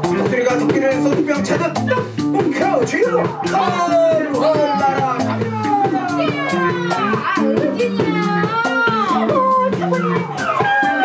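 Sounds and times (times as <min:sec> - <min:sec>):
electric bass: 0:00.0 - 0:11.0
keyboard: 0:00.0 - 0:11.0
steady drum beat: 0:00.0 - 0:11.0
vocalists singing: 0:03.2 - 0:11.0.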